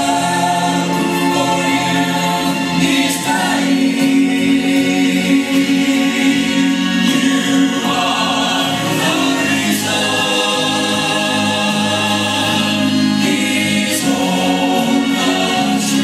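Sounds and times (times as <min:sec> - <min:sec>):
choir singing gospel song: 0:00.0 - 0:16.0.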